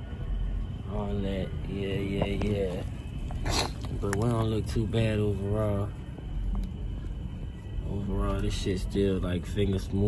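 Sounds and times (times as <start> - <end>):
low steady rumbling: 0.0 - 10.0.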